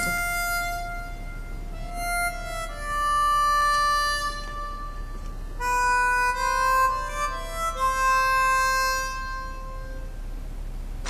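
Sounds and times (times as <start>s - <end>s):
held melodic note: 0.0s - 10.3s.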